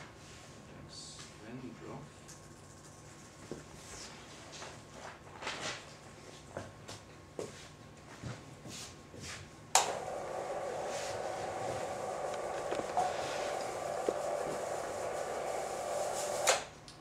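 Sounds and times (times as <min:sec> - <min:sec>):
projection screen motor humming: 0:09.7 - 0:17.0.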